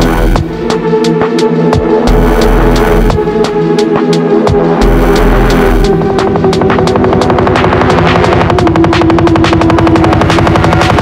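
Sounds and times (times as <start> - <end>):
rolling drum and bass beat: 0.0 - 11.0
held synth tone: 4.8 - 6.1.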